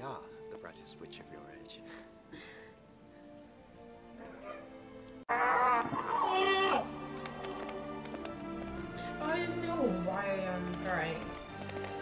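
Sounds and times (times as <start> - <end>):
creature screeching cry: 5.3 - 6.9.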